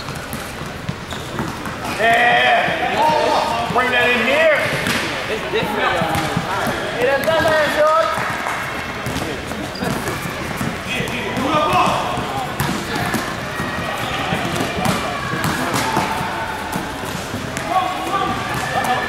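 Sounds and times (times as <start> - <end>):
basketball bouncing on gym floor: 0.0 - 2.0, 5.9 - 19.0
voices shouting: 9.8 - 19.0.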